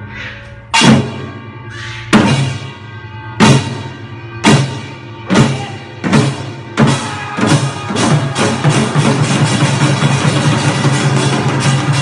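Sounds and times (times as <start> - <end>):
hourglass drums played with sticks: 0.7 - 1.4, 2.1 - 2.8, 3.4 - 12.0.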